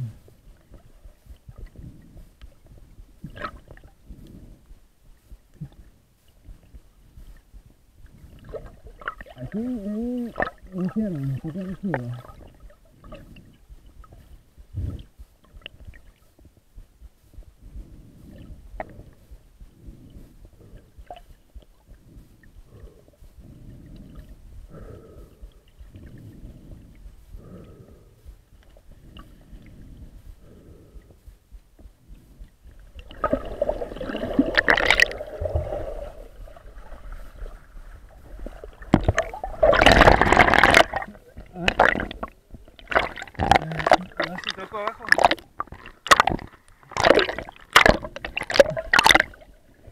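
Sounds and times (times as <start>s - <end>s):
muffled underwater water rumble: 0.0s - 49.9s.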